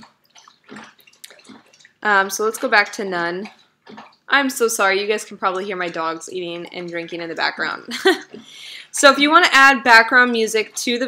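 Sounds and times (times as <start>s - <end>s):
dog lapping water: 0.0s - 8.6s.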